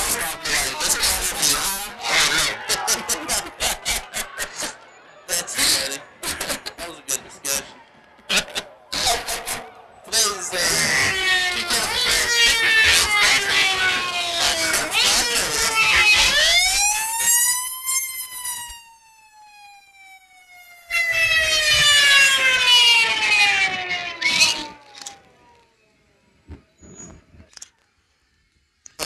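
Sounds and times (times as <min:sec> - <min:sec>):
fire truck siren wailing: 0:00.0 - 0:03.3, 0:09.5 - 0:25.8.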